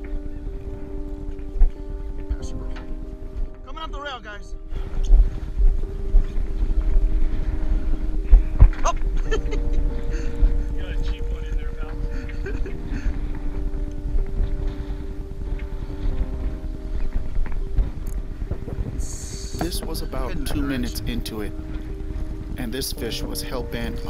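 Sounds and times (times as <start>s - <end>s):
wind rumble on microphone: 0.0s - 24.0s
background voices: 18.8s - 24.0s.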